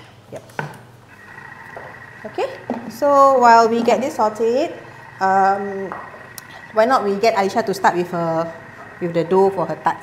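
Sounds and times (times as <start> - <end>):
faint motor whine: 1.0 - 10.0.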